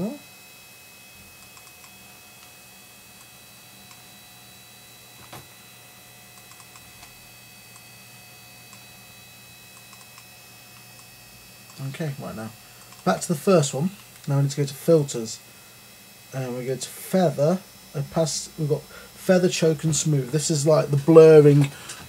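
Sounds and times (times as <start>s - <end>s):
electrical hum: 0.0s - 22.0s
computer mouse clicks: 1.4s - 2.5s, 6.4s - 7.1s, 9.8s - 10.2s, 12.8s - 13.1s.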